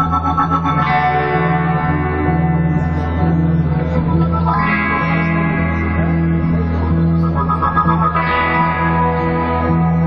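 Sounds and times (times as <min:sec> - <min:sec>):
electric guitar: 0:00.0 - 0:10.0
low bass notes: 0:00.0 - 0:10.0.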